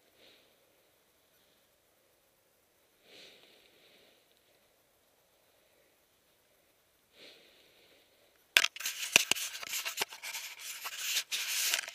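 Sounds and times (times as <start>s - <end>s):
fabric rubbing against microphone: 8.6s - 11.9s.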